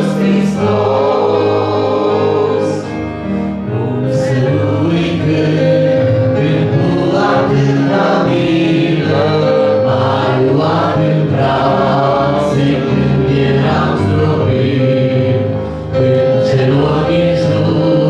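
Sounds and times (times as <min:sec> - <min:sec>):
congregation singing a hymn: 0:00.0 - 0:18.0.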